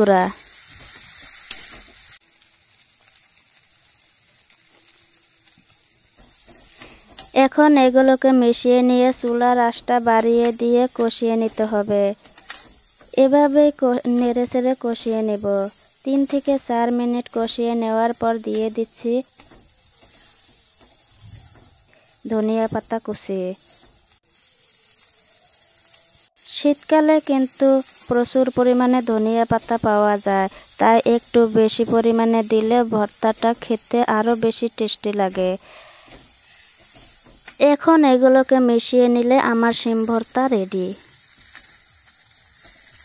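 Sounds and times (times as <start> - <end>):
beans sizzling in oil: 0.0 - 43.0
light crackles: 0.2 - 26.7, 27.3 - 37.6, 38.2 - 43.0
spatula scraping pan: 6.1 - 7.6, 8.9 - 13.3, 19.2 - 23.0, 23.6 - 24.2, 35.3 - 37.6, 42.4 - 43.0.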